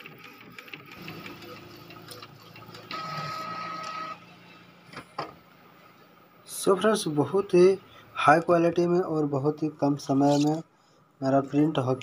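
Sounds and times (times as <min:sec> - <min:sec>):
high-pitched printer whine: 0:00.0 - 0:04.9
printer mechanism whirring: 0:00.0 - 0:05.4.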